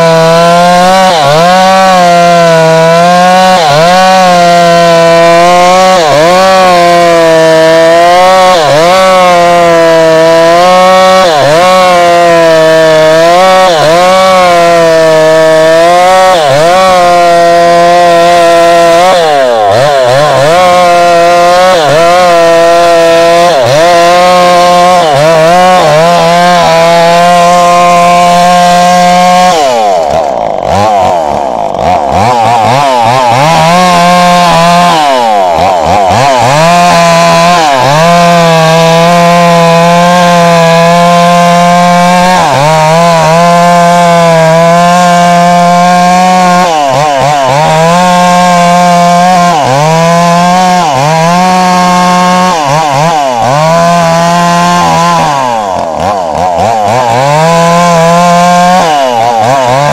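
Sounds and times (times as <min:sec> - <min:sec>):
chainsaw cutting a log: 0:00.0 - 0:59.9.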